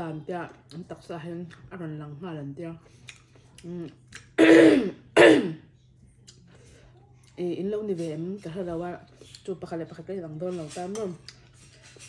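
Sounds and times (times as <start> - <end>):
woman coughing: 4.4 - 5.7.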